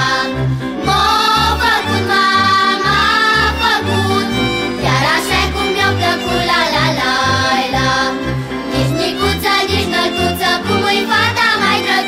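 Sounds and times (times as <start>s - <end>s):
folk band playing: 0.0s - 12.0s.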